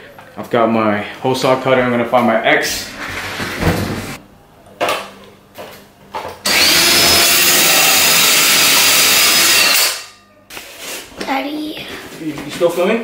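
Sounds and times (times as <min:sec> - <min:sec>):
hole saw drill grinding: 0:06.4 - 0:10.1.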